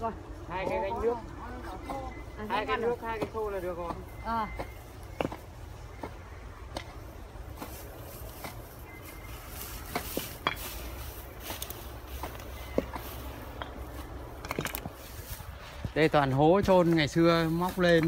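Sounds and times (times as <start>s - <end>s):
clicks and rustles in dry grass: 6.9s - 18.0s.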